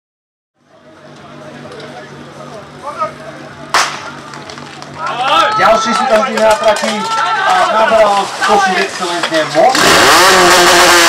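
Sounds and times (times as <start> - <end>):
steady low hum: 0.6 - 5.1.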